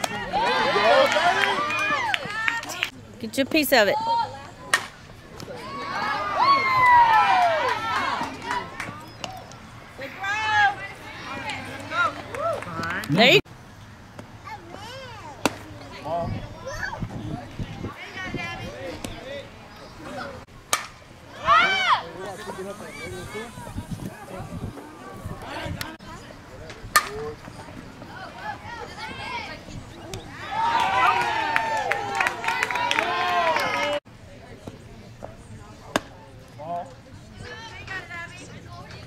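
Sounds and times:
spectators chatting: 0.0 - 39.0
bat hitting ball: 4.7 - 5.0, 20.7 - 21.0, 26.9 - 27.2.

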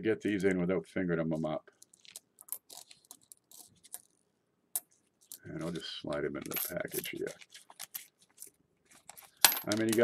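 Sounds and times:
coins clicking and clinking: 6.4 - 7.2, 9.1 - 10.0.

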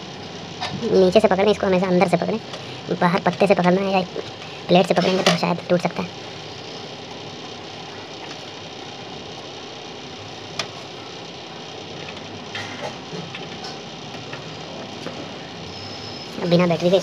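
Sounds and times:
steady background hiss: 0.0 - 17.0.

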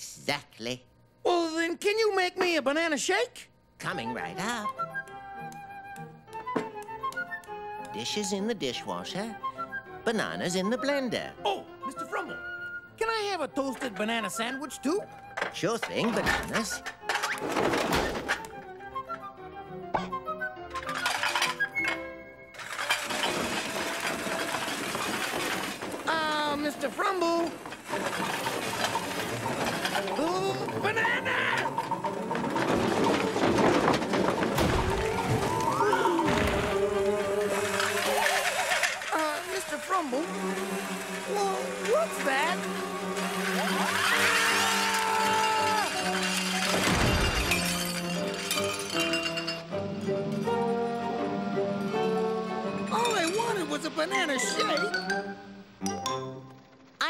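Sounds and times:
background music: 3.4 - 57.0
electric blender whirring: 22.6 - 26.0, 35.8 - 46.3
glass breaking crash: 22.6 - 39.6, 43.1 - 49.8
cartoon music notes: 51.9 - 56.6.

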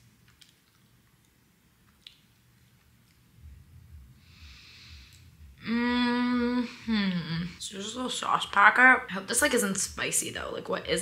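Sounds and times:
person chewing quietly: 0.0 - 3.5
woman humming mmm: 5.5 - 7.6.

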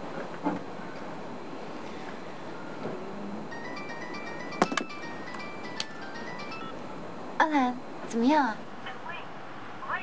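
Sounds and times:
phone melody ringtone: 3.5 - 6.8.

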